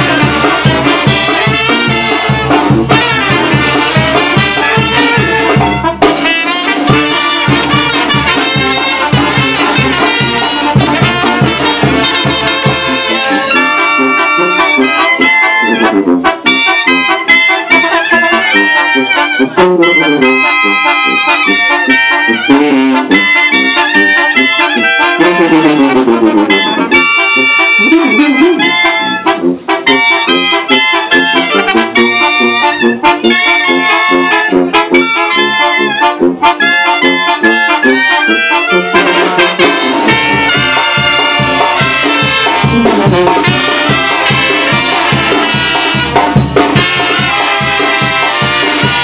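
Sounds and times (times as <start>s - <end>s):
brass band playing: 0.0s - 49.0s.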